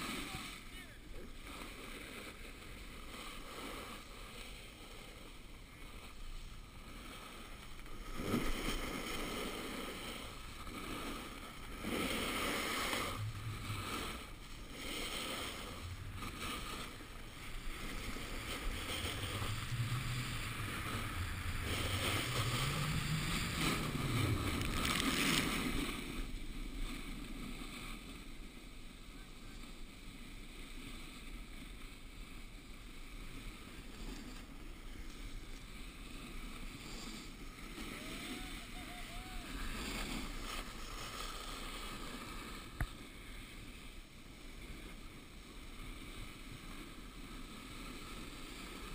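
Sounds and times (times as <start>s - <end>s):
snowboard scraping over snow: 0.0s - 48.9s
wind on microphone: 6.7s - 29.1s.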